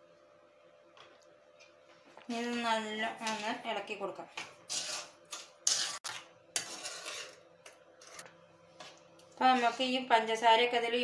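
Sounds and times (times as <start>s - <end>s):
spoon scraping metal pan: 3.1s - 3.7s, 4.4s - 8.3s, 9.4s - 10.1s.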